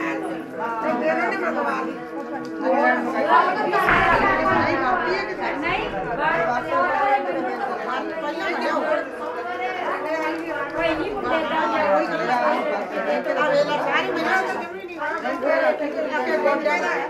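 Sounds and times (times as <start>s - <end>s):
group of people chattering: 0.0s - 17.0s.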